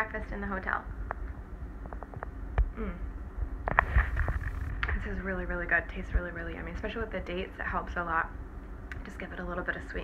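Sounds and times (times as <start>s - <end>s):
camera handling rumble: 1.8s - 2.4s, 3.6s - 5.0s
woman humming mm: 2.7s - 3.2s.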